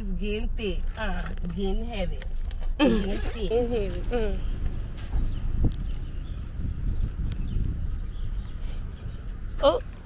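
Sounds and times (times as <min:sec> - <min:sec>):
microphone handling noise: 0:03.2 - 0:09.5
wind rumbling on microphone: 0:03.3 - 0:10.0.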